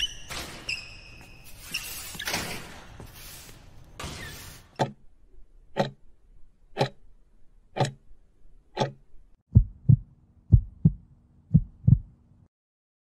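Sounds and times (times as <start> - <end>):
sharp countdown ticks: 6.8 - 7.0
deep thumps: 9.5 - 12.2.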